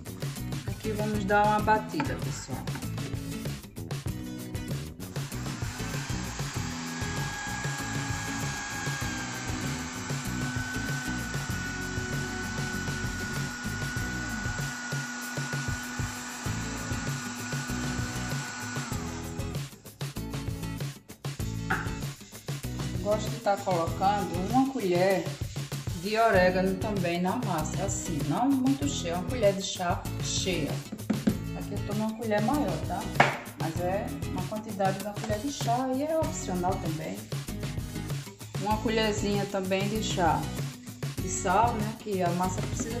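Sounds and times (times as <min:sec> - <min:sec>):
blender motor whining: 0:05.0 - 0:19.8.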